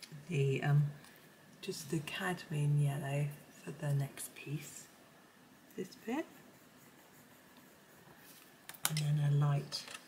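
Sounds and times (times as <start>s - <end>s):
coloured pencil rubbing on paper: 6.1s - 8.5s.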